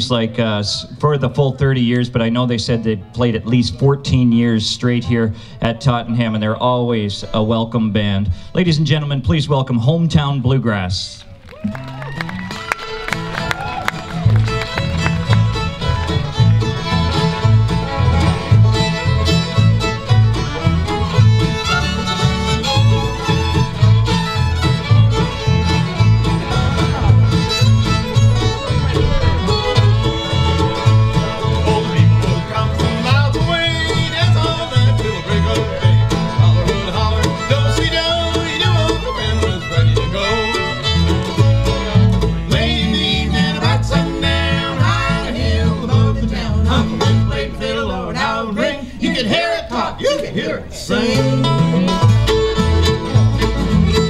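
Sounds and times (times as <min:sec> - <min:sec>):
guitar: 0:00.0 - 0:54.0
fiddle: 0:11.3 - 0:48.4, 0:50.9 - 0:54.0
mandolin: 0:11.6 - 0:48.3, 0:50.9 - 0:54.0
banjo: 0:12.4 - 0:48.4, 0:50.9 - 0:54.0
upright bass beat: 0:13.2 - 0:47.6, 0:51.0 - 0:54.0.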